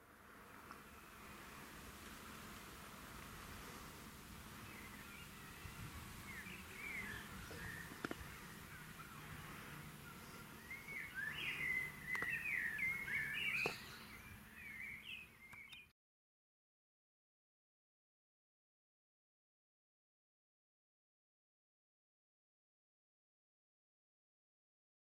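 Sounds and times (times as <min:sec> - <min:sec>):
small birds chirping: 0:00.5 - 0:15.9.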